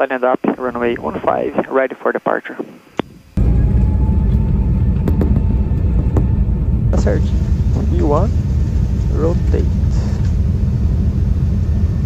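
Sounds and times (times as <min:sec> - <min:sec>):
faint steady whine: 0:00.0 - 0:12.0
jet engines rumbling on takeoff: 0:00.0 - 0:12.0.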